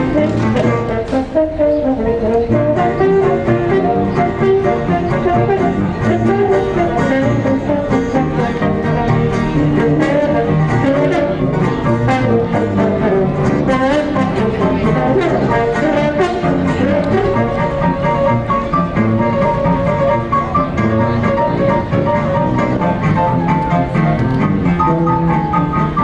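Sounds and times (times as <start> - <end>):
banjo: 0.0 - 26.0
clarinet: 0.0 - 26.0
trombone: 0.0 - 26.0.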